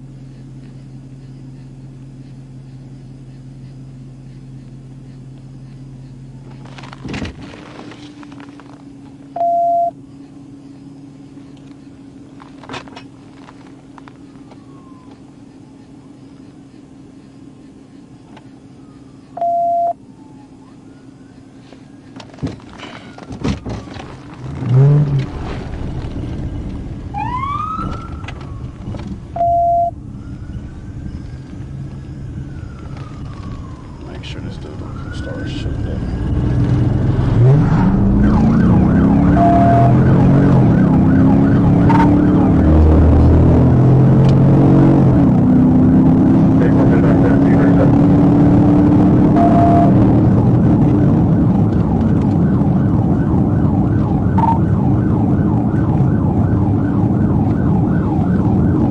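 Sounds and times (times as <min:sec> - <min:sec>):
car engine hum: 0:00.0 - 0:58.9
short electronic beep: 0:09.3 - 0:10.0, 0:19.4 - 0:20.0, 0:29.3 - 0:30.0, 0:39.3 - 0:40.1, 0:49.3 - 0:50.0
siren wail: 0:14.2 - 0:16.0, 0:18.7 - 0:22.2, 0:22.9 - 0:58.9.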